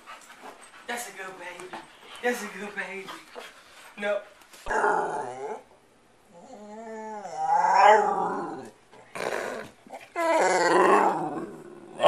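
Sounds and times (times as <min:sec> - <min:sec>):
dog moaning vocalization: 0:04.7 - 0:05.7, 0:06.3 - 0:12.0.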